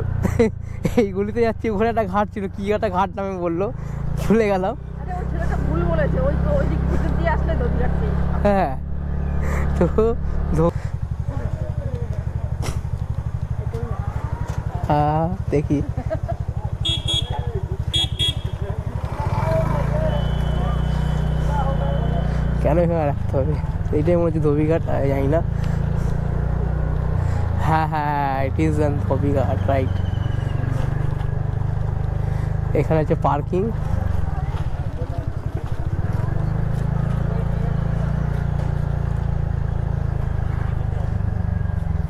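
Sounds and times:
scooter engine running: 0.0s - 42.0s.

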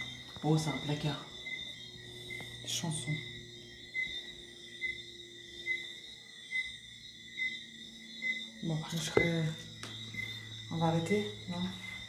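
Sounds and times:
insects chirring: 0.0s - 12.0s
short insect chirp: 0.0s - 12.0s.

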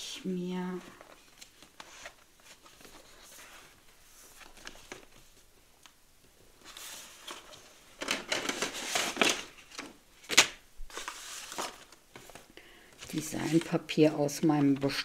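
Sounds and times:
paper rustling and sliding: 1.0s - 5.5s, 6.6s - 15.0s.

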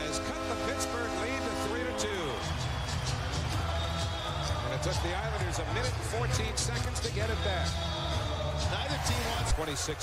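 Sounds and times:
arena crowd cheering: 0.0s - 10.0s.

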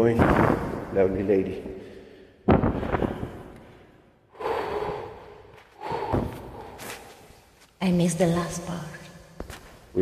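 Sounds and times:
person breathing out: 1.8s - 7.0s.

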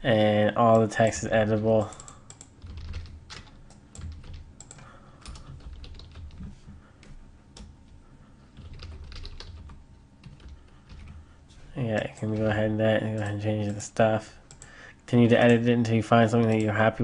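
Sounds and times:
typing on computer keyboard: 1.8s - 7.7s, 8.6s - 11.2s, 14.5s - 14.8s.

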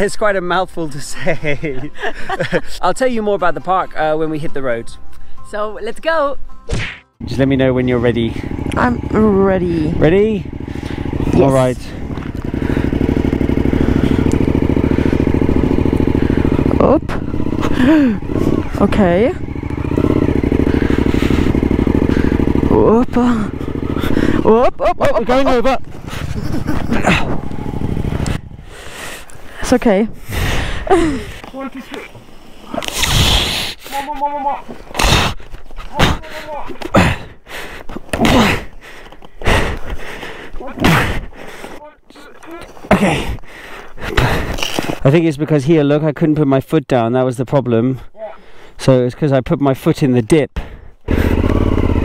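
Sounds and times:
motorcycle engine: 7.2s - 32.7s, 35.0s - 41.6s, 50.7s - 52.0s
people grunting and gasping: 12.0s - 18.9s, 19.8s - 25.2s, 25.8s - 29.3s, 30.2s - 45.0s, 48.1s - 48.6s.

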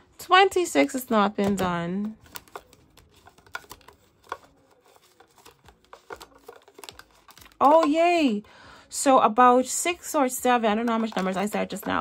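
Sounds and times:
plastic envelopes clicking: 1.4s - 8.0s
plastic rustling: 1.4s - 8.0s.

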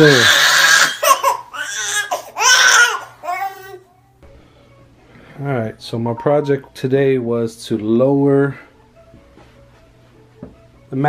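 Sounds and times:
baby crying: 0.0s - 4.0s.

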